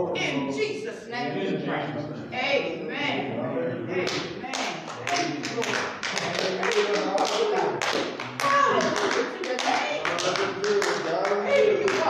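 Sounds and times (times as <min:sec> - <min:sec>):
voices talking: 0:00.0 - 0:12.0
hands clapping quickly: 0:04.0 - 0:12.0.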